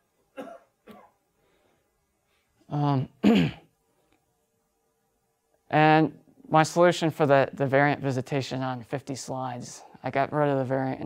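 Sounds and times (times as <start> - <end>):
person coughing: 0.3 - 1.2, 3.2 - 3.7.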